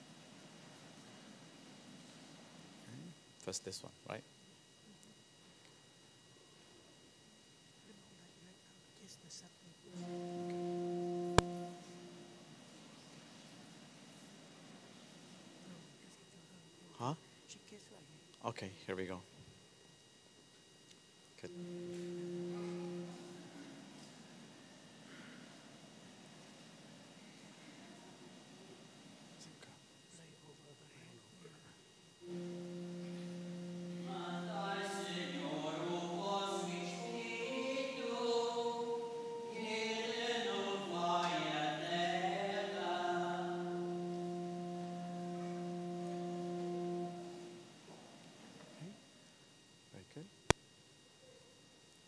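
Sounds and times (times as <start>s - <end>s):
faint room sound: 0.0s - 52.0s
organ holding steady note: 9.8s - 13.2s, 21.4s - 26.6s, 32.2s - 48.9s
voices singing a chant: 33.4s - 46.0s.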